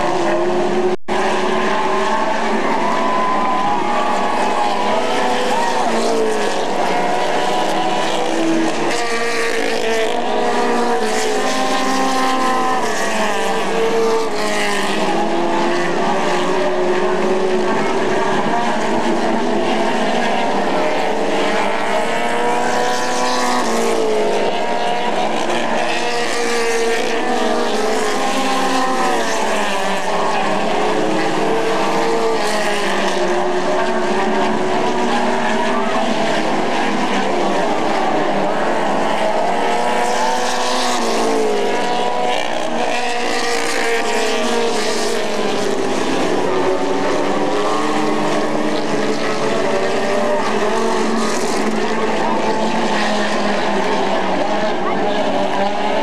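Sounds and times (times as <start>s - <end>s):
race car engines accelerating: 0.0s - 56.0s.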